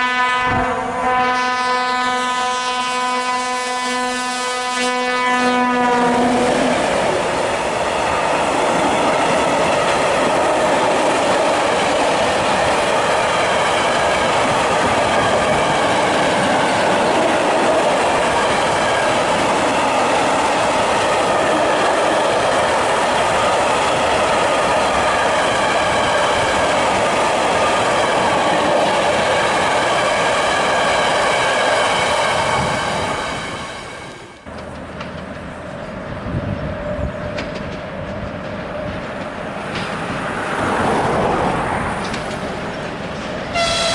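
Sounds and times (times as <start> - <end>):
locomotive horn: 0.0 - 6.8, 43.5 - 43.9
diesel locomotive passing: 0.0 - 43.9
wheels clattering over rail joints: 37.2 - 43.6.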